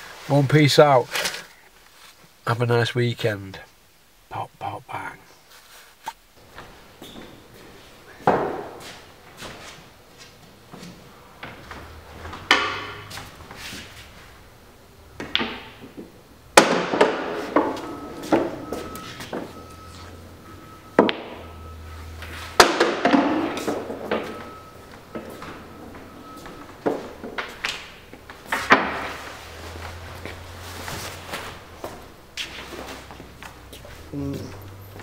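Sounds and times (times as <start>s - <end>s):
pool balls clacking: 8.2s - 9.4s, 10.3s - 13.6s, 15.2s - 33.7s.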